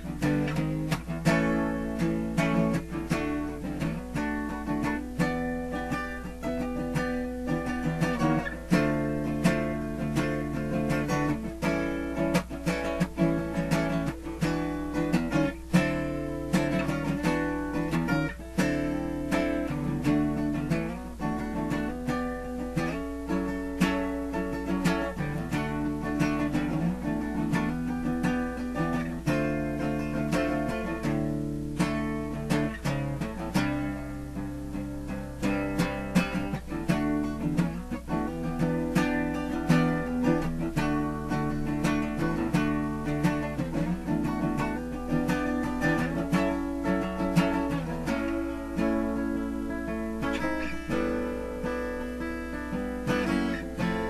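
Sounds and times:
acoustic guitar strummed: 0:00.0 - 0:54.0.

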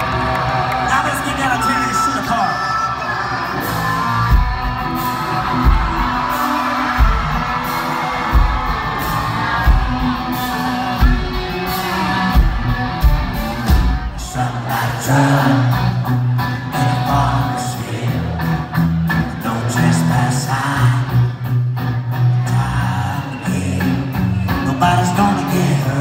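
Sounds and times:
live country-rock band: 0:00.0 - 0:26.0
bass line: 0:03.4 - 0:26.0
person singing: 0:14.2 - 0:18.5.

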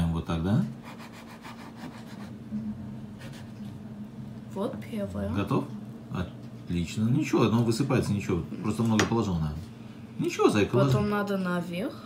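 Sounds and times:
knife sawing through bread: 0:00.7 - 0:02.4.

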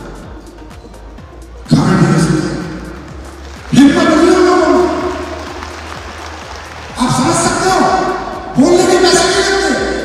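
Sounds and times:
man's voice over pa system: 0:01.7 - 0:03.0, 0:03.7 - 0:05.4, 0:06.9 - 0:10.0.

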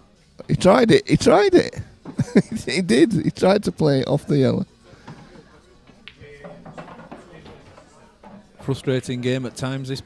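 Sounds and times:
faint voices talking: 0:03.8 - 0:10.0.

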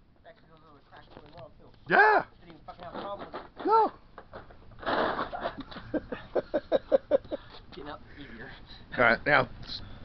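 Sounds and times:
laughter: 0:05.4 - 0:07.6.

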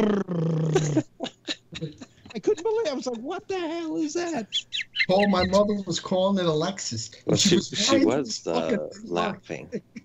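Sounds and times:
man blowing a raspberry: 0:00.0 - 0:01.0.

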